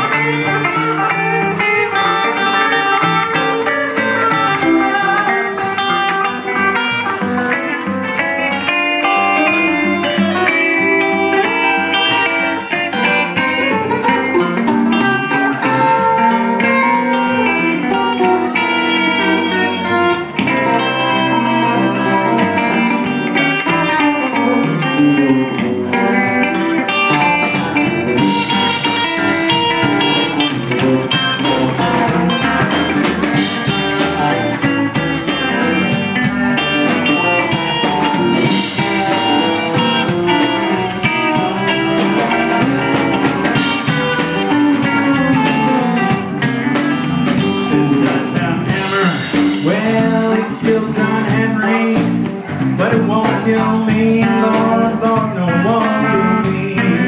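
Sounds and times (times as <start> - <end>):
electric blues band playing: 0.0 - 57.0
picked electric guitar lines: 0.0 - 57.0.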